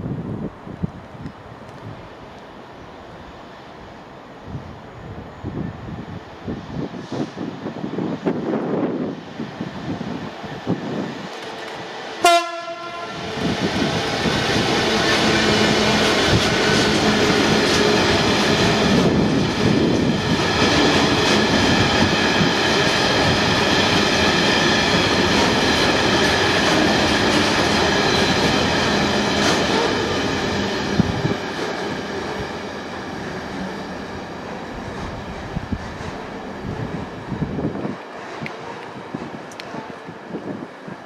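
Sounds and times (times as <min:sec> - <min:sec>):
train wheels clattering on rail: 0:10.4 - 0:41.0
locomotive horn blast: 0:12.2 - 0:13.2.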